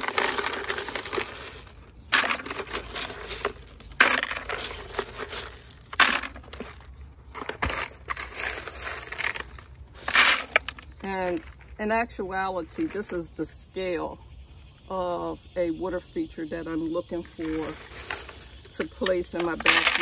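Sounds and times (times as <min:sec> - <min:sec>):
stone chips crunching and clattering: 0:00.0 - 0:11.6, 0:17.4 - 0:20.0.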